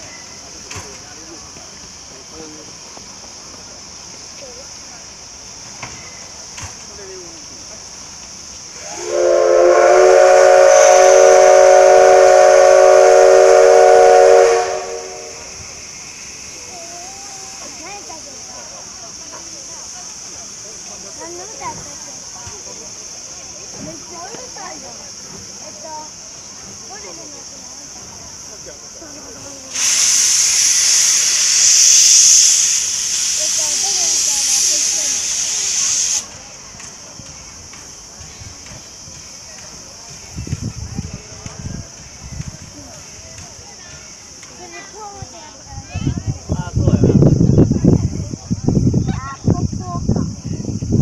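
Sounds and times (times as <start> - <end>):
steam locomotive hissing steam: 0.0 - 51.0
steam locomotive whistle: 8.8 - 15.7, 29.7 - 36.3.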